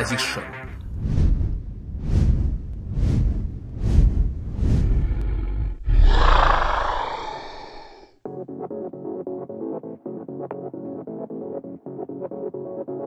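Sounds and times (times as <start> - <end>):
dragon growls: 4.6 - 8.2
dragon roar: 4.8 - 8.2.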